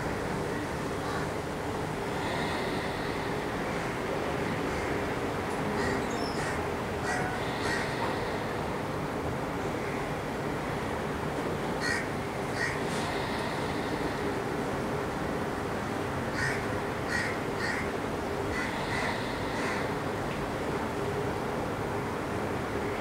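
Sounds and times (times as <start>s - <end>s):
short bird calls: 5.8s - 8.0s.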